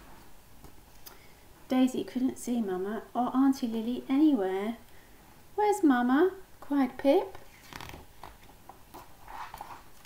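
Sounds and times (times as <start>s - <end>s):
paper page rustling and turning: 7.3s - 10.0s.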